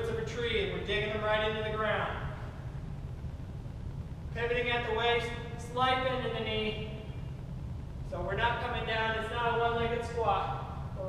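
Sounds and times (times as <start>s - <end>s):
man's voice echoing: 0.0s - 2.6s, 4.3s - 7.2s, 8.1s - 11.0s
low room rumble: 0.0s - 11.0s.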